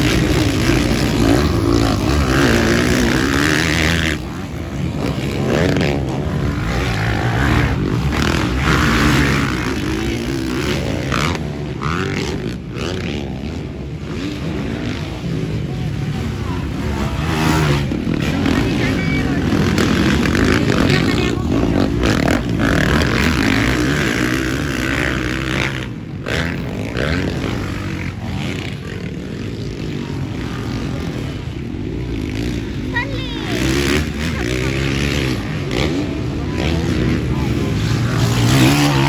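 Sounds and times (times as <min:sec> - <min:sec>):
dirt bike engines revving: 0:00.0 - 0:39.0.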